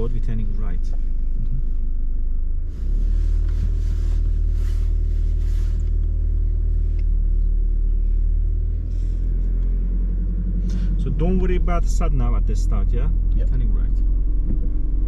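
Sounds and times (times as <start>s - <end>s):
car engine and road noise: 0.0s - 15.0s.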